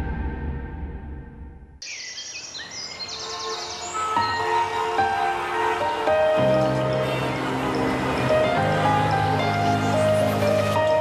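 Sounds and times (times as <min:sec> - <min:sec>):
birds chirping: 0:01.8 - 0:10.7.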